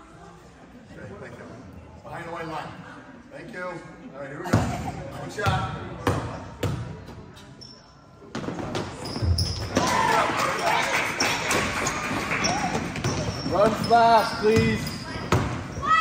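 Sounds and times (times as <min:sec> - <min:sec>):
basketball bouncing on gym floor: 0:05.4 - 0:07.2, 0:08.3 - 0:10.0, 0:12.4 - 0:16.0.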